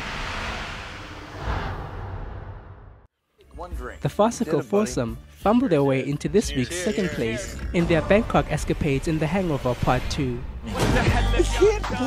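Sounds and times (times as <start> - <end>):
deep rumble: 0.0 - 3.1
loud rushing roar: 0.0 - 3.1.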